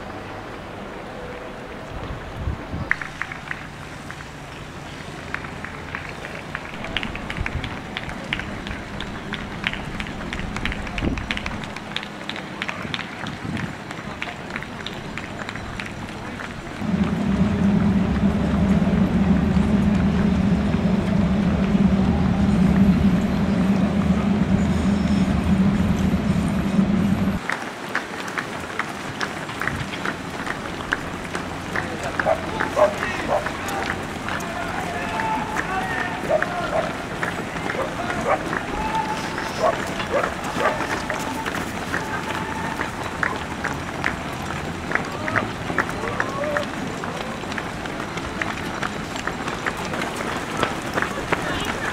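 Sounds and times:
runners' footsteps on asphalt: 0.0 - 51.9
train crossing steel bridge: 0.0 - 51.9
voices: 0.0 - 51.9.

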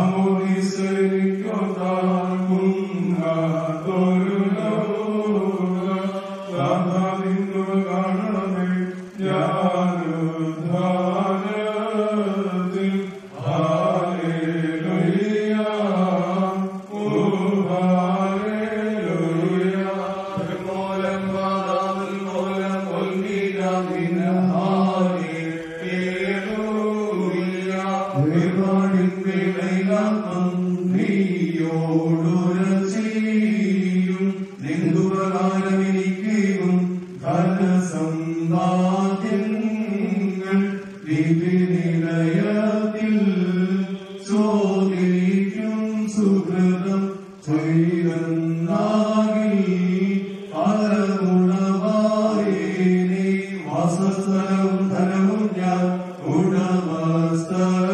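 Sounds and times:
man chanting a hymn: 0.0 - 57.9.

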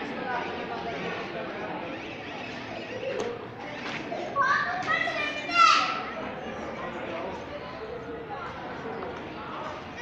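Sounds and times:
murmur of people: 0.0 - 10.0.

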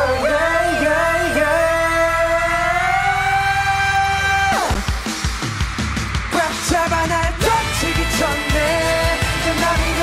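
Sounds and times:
man singing a long high note: 0.0 - 4.7.

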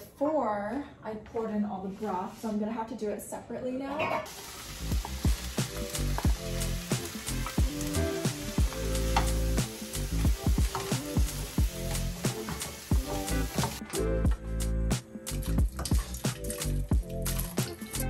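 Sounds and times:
vegetables sizzling in skillet: 4.3 - 13.8
background music with beat: 4.8 - 18.0.

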